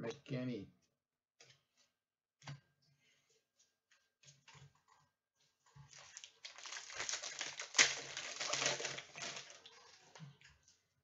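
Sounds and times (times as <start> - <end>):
foil wrapper crinkling: 5.9 - 10.1
wrapper snapping: 6.0 - 9.7.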